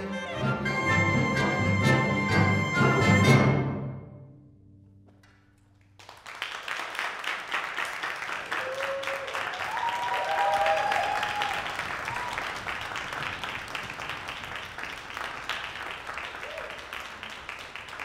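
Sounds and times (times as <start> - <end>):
audience applause: 5.9 - 18.0
audience cheering: 8.1 - 14.5, 16.1 - 18.0.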